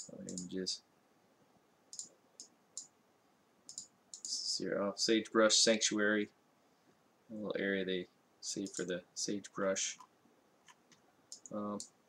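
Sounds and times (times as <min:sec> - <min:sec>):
computer mouse clicks: 0:00.0 - 0:00.5, 0:01.9 - 0:02.9, 0:03.7 - 0:04.4, 0:08.7 - 0:08.9, 0:10.0 - 0:12.0.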